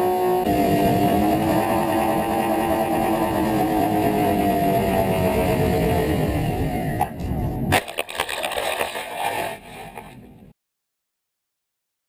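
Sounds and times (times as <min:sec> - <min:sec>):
electric motors whining: 0:00.0 - 0:07.6.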